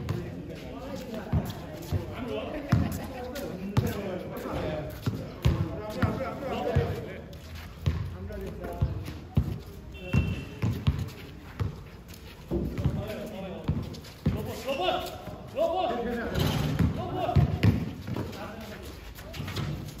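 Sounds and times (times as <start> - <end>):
basketball bouncing on concrete: 0.0 - 0.4, 1.2 - 3.0, 3.8 - 4.1, 5.0 - 7.2, 7.8 - 11.8, 12.5 - 14.6, 16.6 - 18.6.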